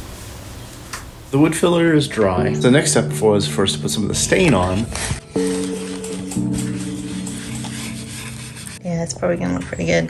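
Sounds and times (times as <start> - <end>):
background music with low notes: 1.4 - 8.8
rag scrubbing wood: 3.7 - 8.9.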